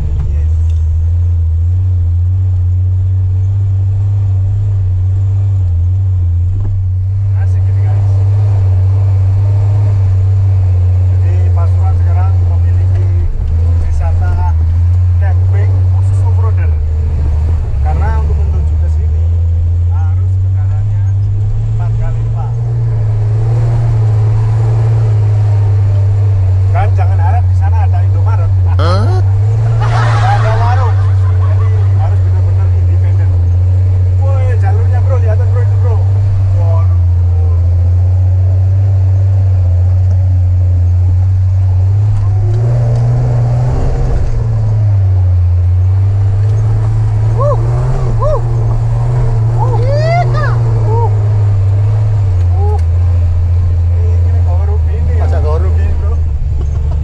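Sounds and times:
vehicle engine droning: 0.0s - 57.0s.

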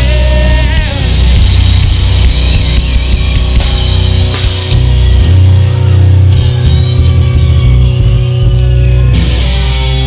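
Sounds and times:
bass guitar: 0.0s - 10.0s
drum kit: 0.0s - 10.0s
electric guitar: 0.0s - 10.0s.

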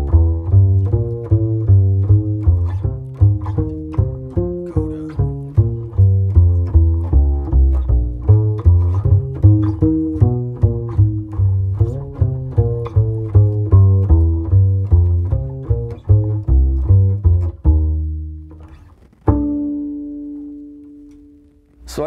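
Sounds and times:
plucked double bass walking line: 0.0s - 22.0s.

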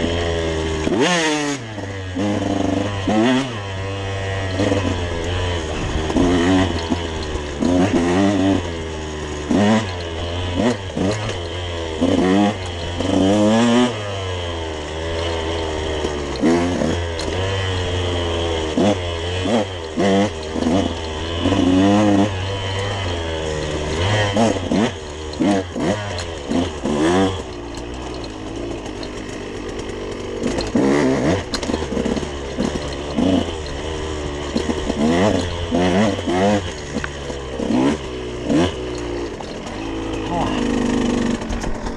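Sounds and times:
dirt bike engine revving: 0.0s - 41.9s.

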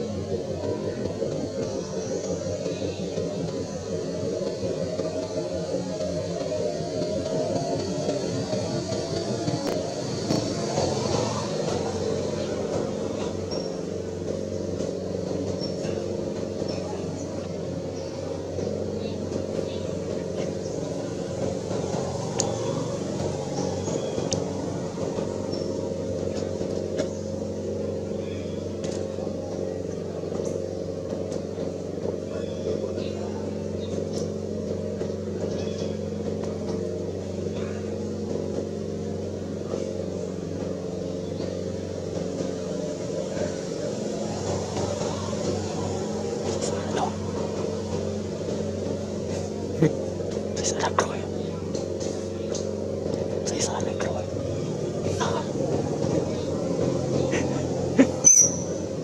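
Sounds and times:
low mechanical hum: 0.0s - 59.0s
voices in background: 0.0s - 59.0s.

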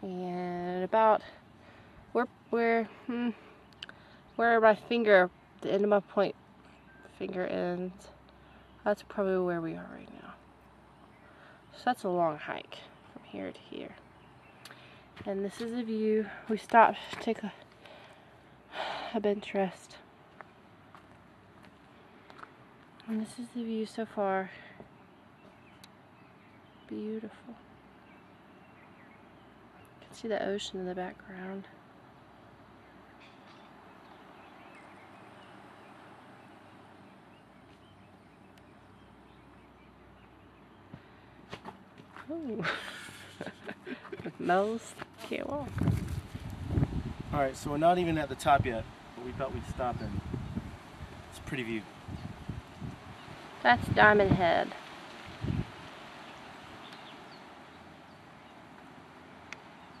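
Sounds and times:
faint outdoor background noise: 0.0s - 60.0s.

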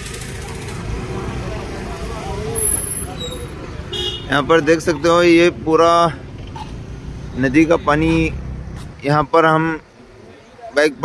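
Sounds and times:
distant people talking: 0.0s - 11.0s
low rumble of street noise: 0.0s - 11.0s.

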